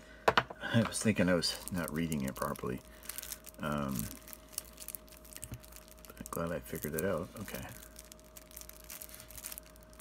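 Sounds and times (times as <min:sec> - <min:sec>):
cellophane wrap crinkling: 0:00.9 - 0:10.0.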